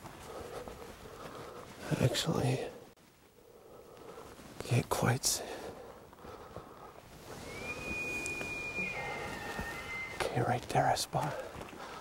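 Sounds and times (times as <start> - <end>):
elk bugling whistle: 7.3 - 10.3.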